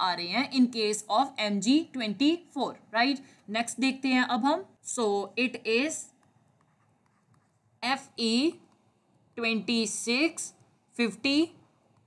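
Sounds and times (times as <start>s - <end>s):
woman speaking: 0.0s - 6.2s, 7.8s - 8.7s, 9.4s - 11.6s
stylus writing on tablet: 0.0s - 12.0s.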